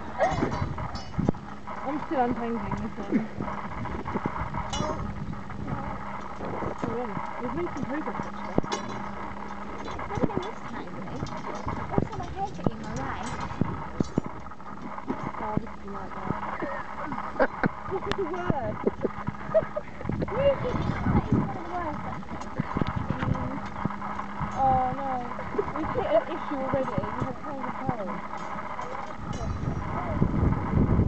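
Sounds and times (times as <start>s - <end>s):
background voices: 0.0s - 30.5s.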